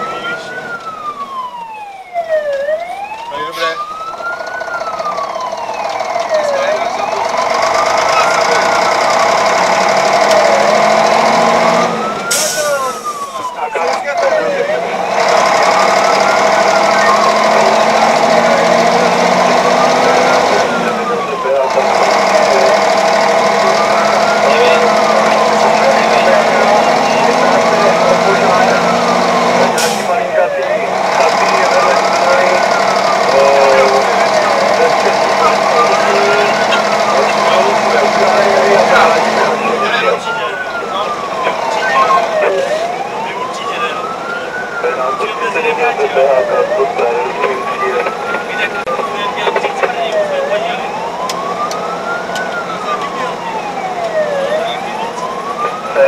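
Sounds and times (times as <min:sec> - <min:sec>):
siren wailing: 0:00.0 - 0:56.0
truck engine running: 0:00.0 - 0:56.0.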